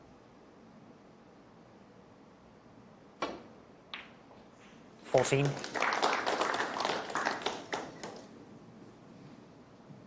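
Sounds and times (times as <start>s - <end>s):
audience applause: 5.1s - 8.3s.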